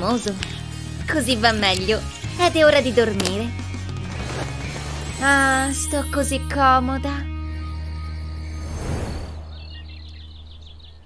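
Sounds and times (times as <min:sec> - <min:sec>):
birds chirping: 0:09.4 - 0:11.0.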